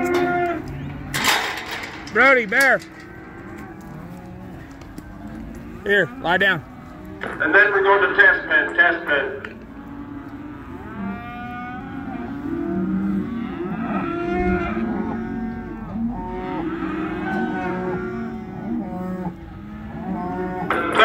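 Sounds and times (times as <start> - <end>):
cattle mooing: 0.0 - 21.0.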